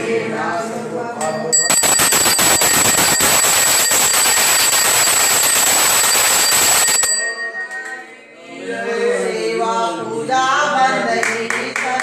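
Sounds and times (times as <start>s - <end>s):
bells and percussion clanging: 1.2s - 8.2s
high ringing: 1.2s - 8.2s.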